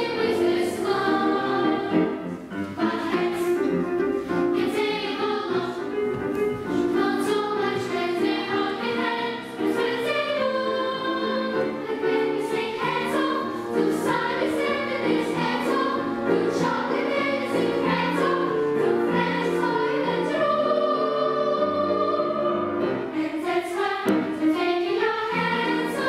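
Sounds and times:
children's choir singing: 0:00.0 - 0:26.0.

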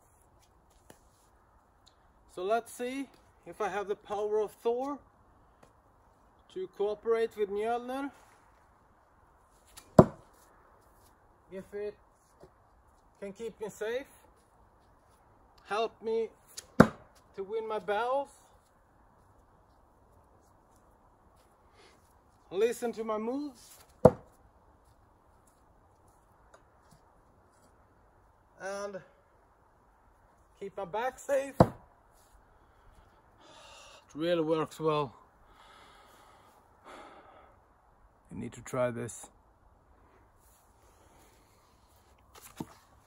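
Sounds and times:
axe thunking into wooden log: 0:09.8 - 0:10.3, 0:16.6 - 0:17.2, 0:24.0 - 0:24.4, 0:31.6 - 0:31.9
tomahawk thudding into wood: 0:09.8 - 0:10.3, 0:16.6 - 0:17.2, 0:24.0 - 0:24.3, 0:31.6 - 0:31.9.

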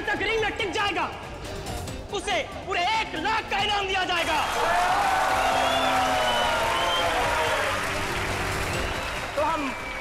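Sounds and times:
crowd applauding and cheering: 0:04.1 - 0:10.0.

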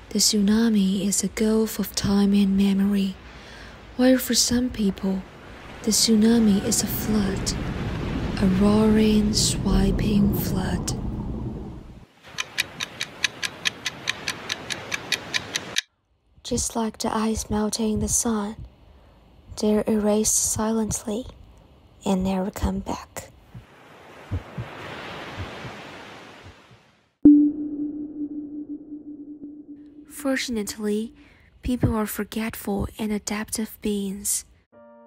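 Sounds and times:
rushing churning water: 0:23.6 - 0:26.9
steady low tone: 0:27.2 - 0:31.5.

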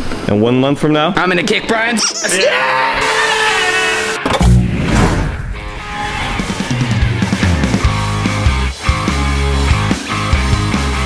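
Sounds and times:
distorted drawn-out shout: 0:02.3 - 0:08.2
deep bass boom: 0:04.3 - 0:08.5
outro music: 0:04.3 - 0:09.9.

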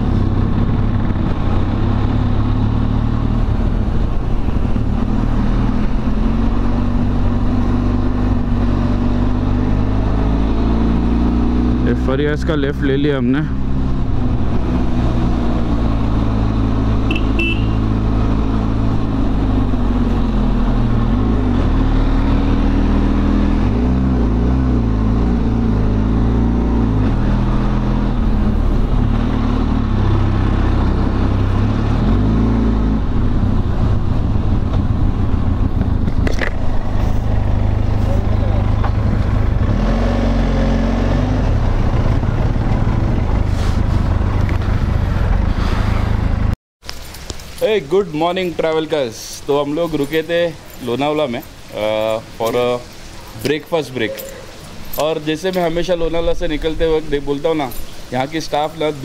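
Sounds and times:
motorcycle engine revving: 0:00.0 - 0:46.6.

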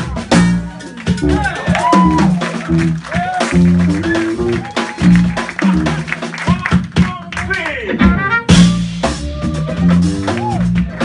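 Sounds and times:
electric bass notes: 0:00.0 - 0:06.3, 0:08.0 - 0:11.0
jazz band playing: 0:00.0 - 0:11.0
pitch-bending lead line: 0:00.3 - 0:06.5.

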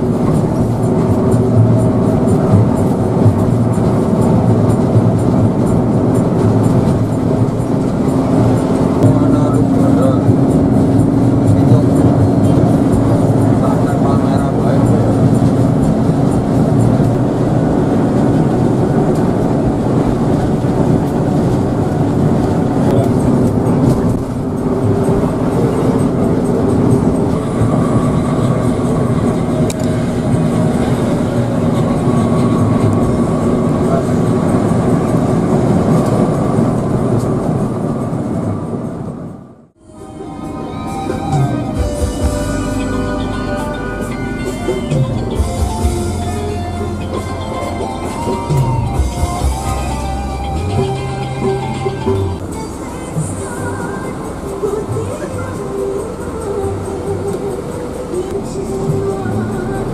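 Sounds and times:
tyre and road rumble: 0:00.0 - 0:39.6
diesel engine drone: 0:00.0 - 0:59.9.

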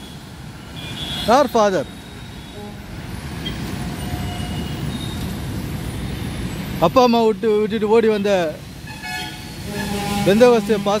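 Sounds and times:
traffic on a wet street: 0:00.0 - 0:11.0.

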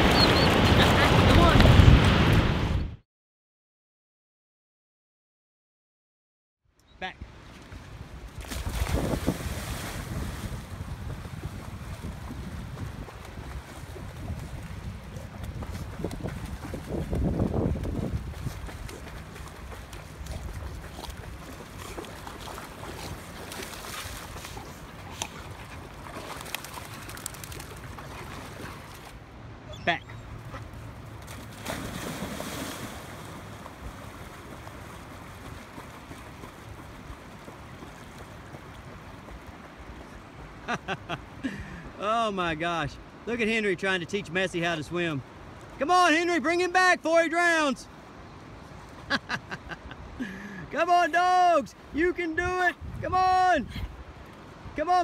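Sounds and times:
wind rumbling on microphone: 0:00.0 - 0:03.0, 0:07.2 - 0:25.5, 0:52.7 - 0:54.8
faint water sounds: 0:06.8 - 0:55.0
dogs splashing into river: 0:08.3 - 0:29.2, 0:30.8 - 0:39.6.

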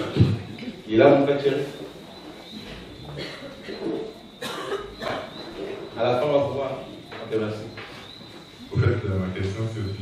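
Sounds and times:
person coughing: 0:03.2 - 0:03.8, 0:04.4 - 0:05.3.

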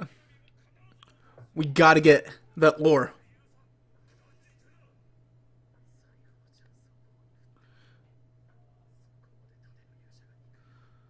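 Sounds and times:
low electrical hum: 0:00.0 - 0:11.0
faint hissy whispers: 0:05.7 - 0:11.0.

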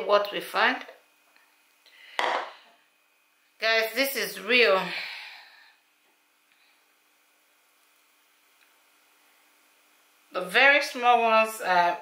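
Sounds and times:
bowl clunking on countertop: 0:02.2 - 0:02.5.

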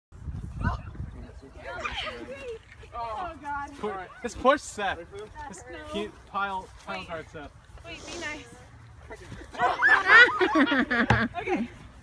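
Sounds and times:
wind rumble on microphone: 0:00.1 - 0:02.9
people talking and calling out: 0:00.3 - 0:12.0.

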